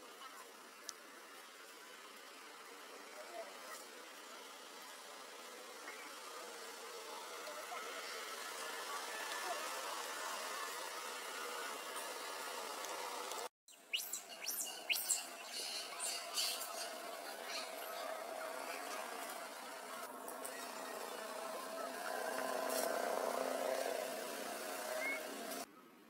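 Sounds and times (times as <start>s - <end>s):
faint distant voices: 0.0s - 26.0s.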